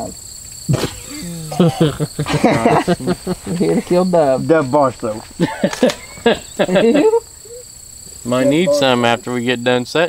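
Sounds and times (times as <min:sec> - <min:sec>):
crickets chirring: 0:00.0 - 0:10.0
man laughing: 0:00.7 - 0:04.2, 0:05.3 - 0:07.6.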